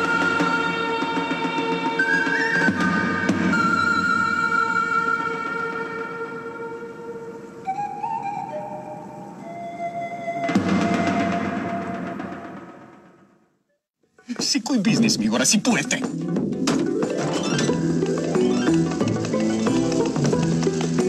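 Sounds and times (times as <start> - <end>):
slow film score melody: 0.0 - 13.0, 15.2 - 21.0.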